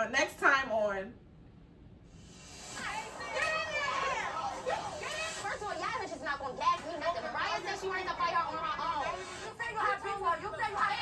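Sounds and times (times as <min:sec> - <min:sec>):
voices from tv clip: 0:02.2 - 0:11.0.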